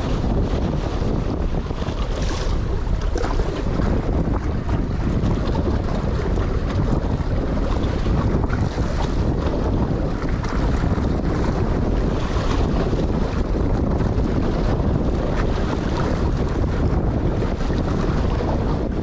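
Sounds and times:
sea water washing against rocks: 0:00.0 - 0:19.0
wind buffeting microphone: 0:00.0 - 0:19.0.

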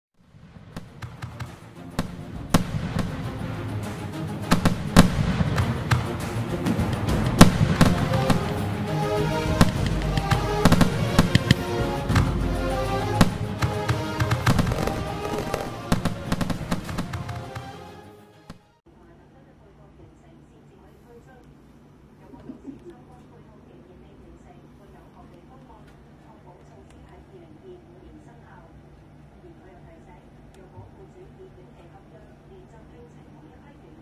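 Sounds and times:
fireworks bangs and crackles: 0:00.2 - 0:08.7, 0:09.5 - 0:12.4, 0:13.2 - 0:17.7
background music: 0:00.4 - 0:18.8.

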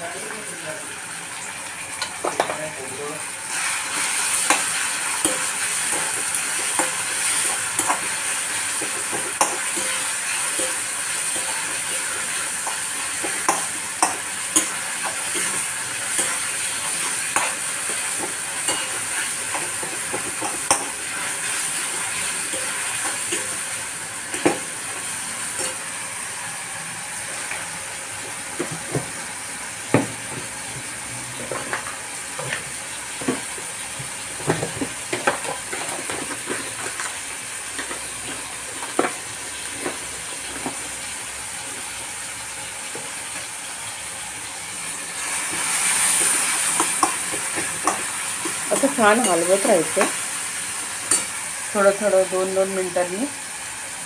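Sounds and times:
vegetables sizzling in oil: 0:00.0 - 0:54.0
spatula scraping and clicking on pan: 0:08.7 - 0:23.6.

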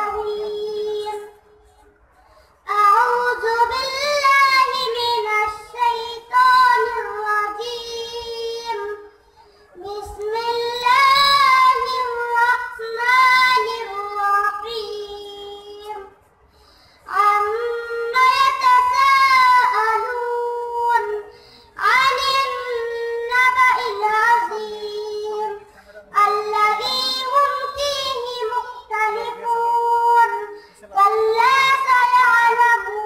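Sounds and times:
boy chanting melodically: 0:00.0 - 0:01.8, 0:02.5 - 0:33.0.

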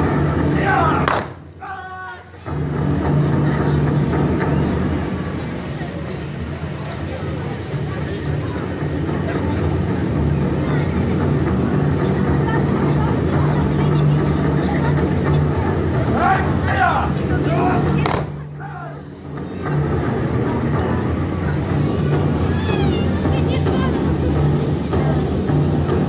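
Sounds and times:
crowd murmur: 0:00.0 - 0:26.0.

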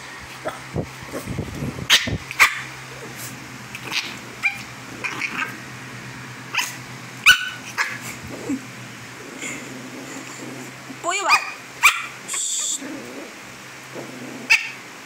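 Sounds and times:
small dog yipping and barking: 0:01.9 - 0:02.8, 0:03.8 - 0:05.6, 0:06.5 - 0:08.2, 0:11.2 - 0:12.4, 0:14.5 - 0:14.8.

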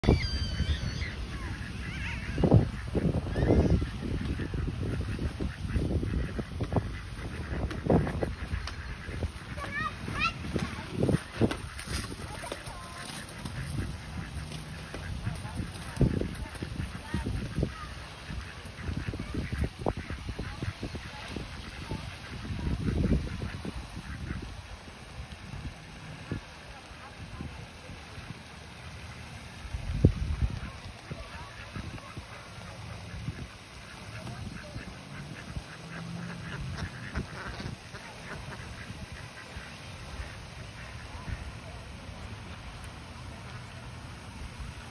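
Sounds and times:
ducks quacking: 0:00.0 - 0:44.9.

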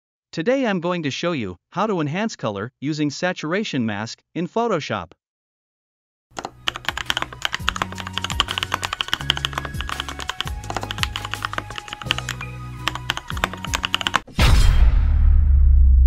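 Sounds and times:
rapid keyboard typing: 0:06.4 - 0:14.3.

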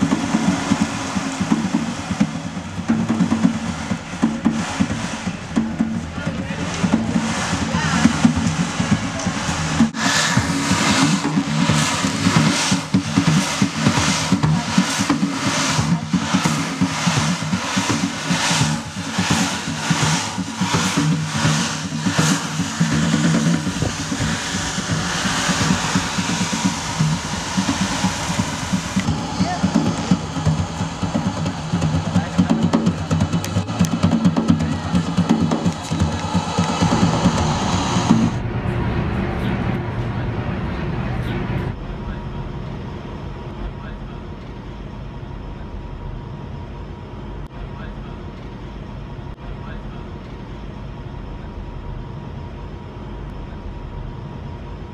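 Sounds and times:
drumming steady beat: 0:00.0 - 0:38.4
voices: 0:00.0 - 0:46.0, 0:47.5 - 0:48.7, 0:49.3 - 0:50.5
low rumble: 0:00.0 - 0:54.9.

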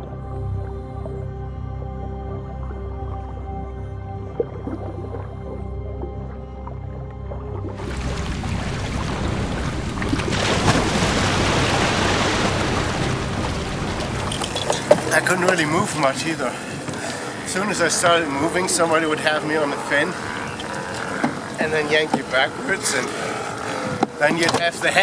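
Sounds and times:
soft background music: 0:00.0 - 0:08.6
water splashing and churning: 0:02.7 - 0:25.0.

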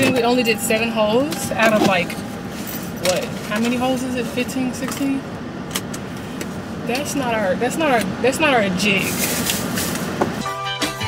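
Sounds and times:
background music with held notes: 0:10.4 - 0:11.0.

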